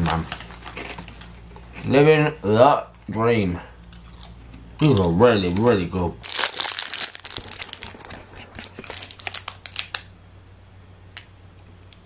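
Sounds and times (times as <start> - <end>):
snack packaging crinkling: 0.0 - 2.3, 3.9 - 10.1.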